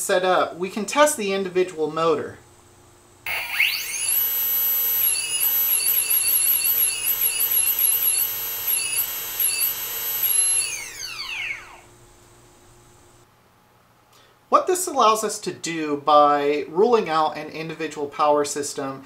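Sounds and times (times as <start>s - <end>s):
electric motor whine: 3.3s - 12.0s.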